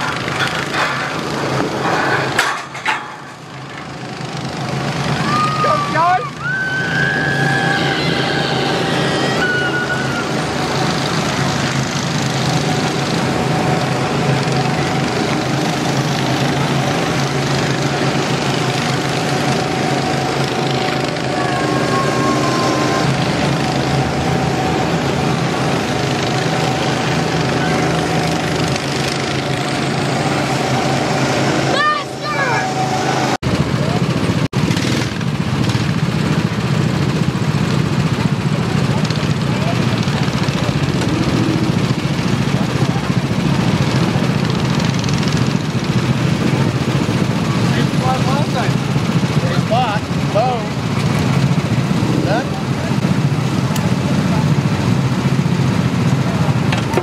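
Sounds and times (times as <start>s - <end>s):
go-kart engines running: 0.0s - 57.0s
voices: 4.3s - 34.2s, 38.2s - 57.0s.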